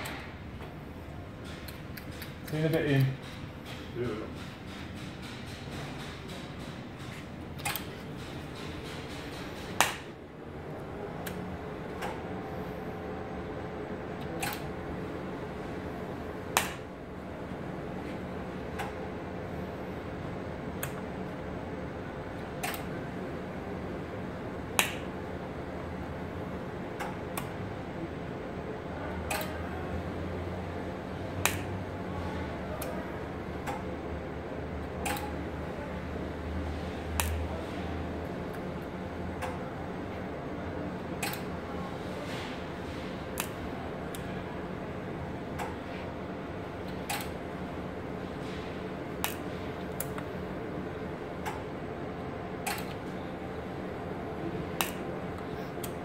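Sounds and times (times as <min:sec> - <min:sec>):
welding machine low hum: 0:00.0 - 0:56.0
welding machine sharp snap: 0:09.2 - 0:10.1, 0:16.6 - 0:16.9, 0:24.8 - 0:25.1.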